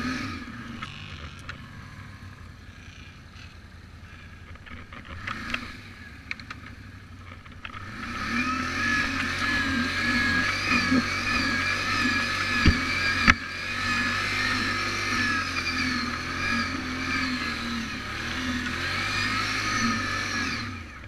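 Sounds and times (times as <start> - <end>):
atv engine running: 0.0 - 21.0.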